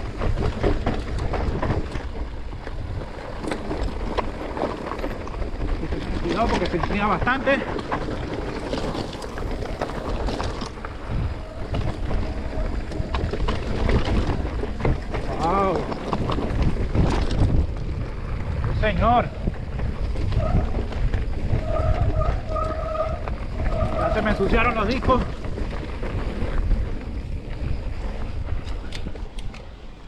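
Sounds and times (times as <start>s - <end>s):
bike tyres rattling over rocks: 0.0s - 30.0s
wind buffeting microphone: 0.0s - 30.0s.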